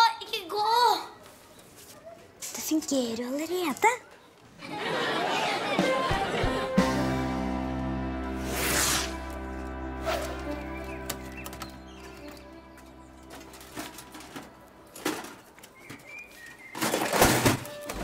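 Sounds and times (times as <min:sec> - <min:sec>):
outdoor ambience: 0:00.0 - 0:18.0
held musical chord: 0:06.7 - 0:15.0
bird chirp: 0:10.4 - 0:13.8, 0:15.6 - 0:16.9.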